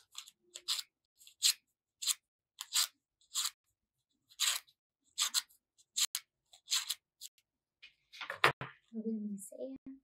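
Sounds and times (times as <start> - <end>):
scissor blade scraping paper: 0.0 - 7.4.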